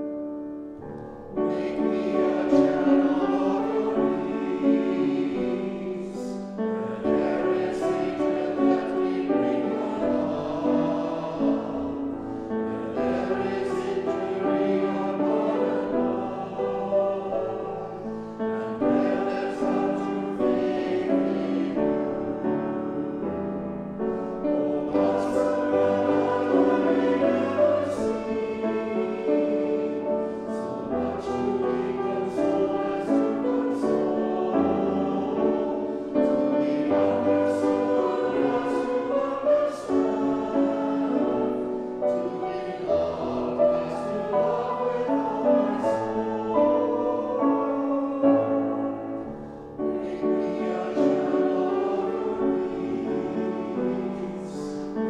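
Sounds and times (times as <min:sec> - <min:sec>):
choir singing in harmony: 0:00.0 - 0:55.0
piano accompaniment: 0:00.0 - 0:55.0.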